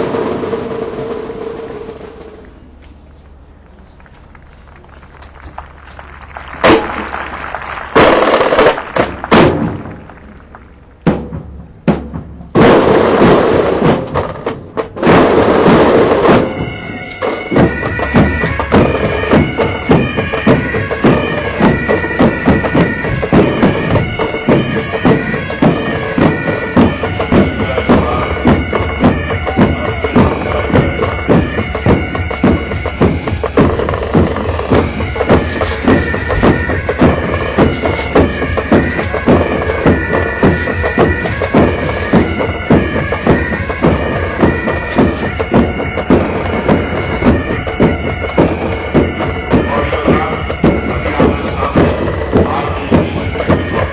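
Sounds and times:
bagpipes playing a march: 0:06.4 - 0:09.6, 0:15.1 - 0:53.9
snare and bass drums: 0:06.4 - 0:53.9.

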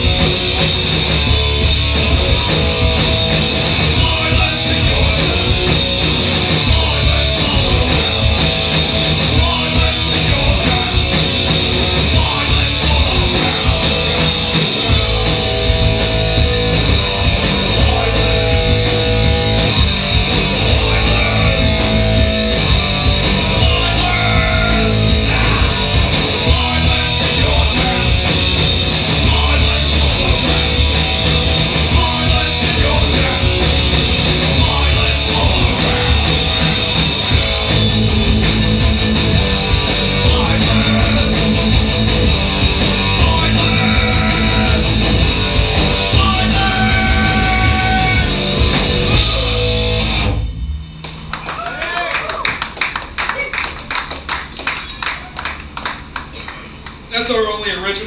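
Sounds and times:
punk rock band playing live: 0:00.0 - 0:57.1.

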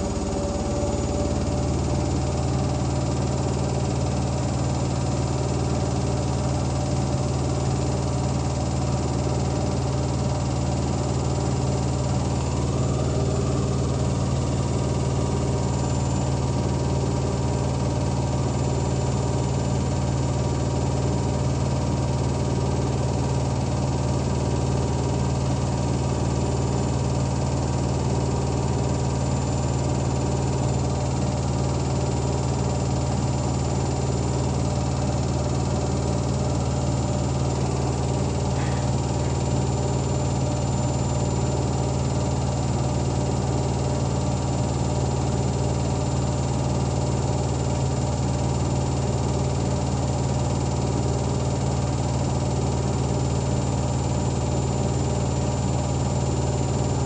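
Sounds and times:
washing machine spinning: 0:00.0 - 0:57.0.

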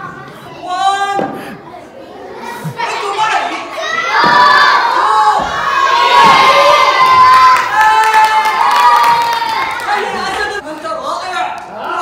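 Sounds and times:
children shouting and cheering: 0:02.1 - 0:10.6.

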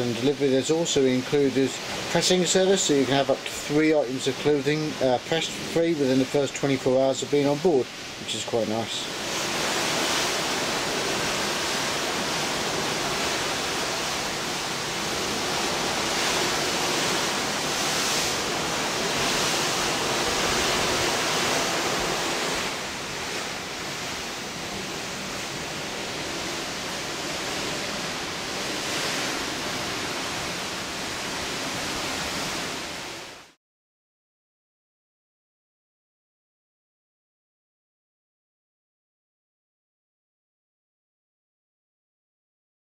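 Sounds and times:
steady rushing hiss: 0:00.0 - 0:33.4.

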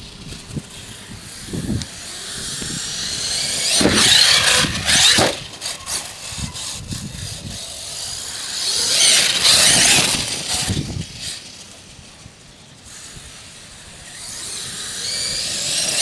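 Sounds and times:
electric motor whining: 0:00.0 - 0:16.0.

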